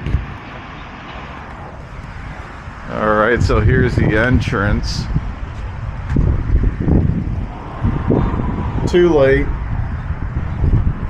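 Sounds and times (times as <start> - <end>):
road traffic: 0.0 - 11.0
wind buffeting microphone: 0.0 - 11.0.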